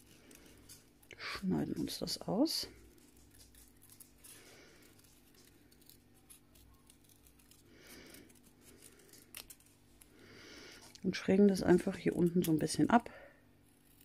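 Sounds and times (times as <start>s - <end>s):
paper rustling: 1.6s - 11.0s
scissors snipping paper: 2.9s - 10.1s.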